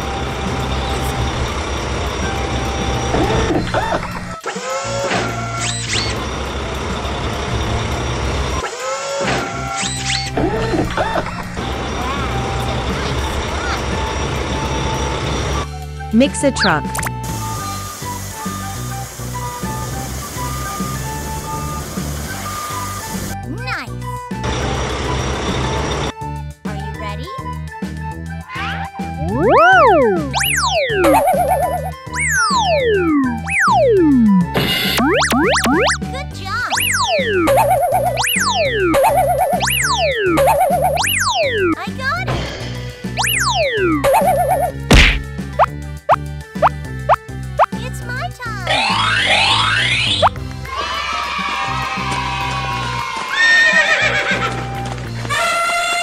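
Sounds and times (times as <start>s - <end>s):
upbeat cartoon music: 16.1s - 18.6s, 26.3s - 56.0s
rising sliding tones: 29.1s - 36.0s, 36.7s - 41.8s, 48.7s - 50.3s
cartoon sound effects sliding down: 29.2s - 41.8s, 43.2s - 45.2s, 48.6s - 50.4s.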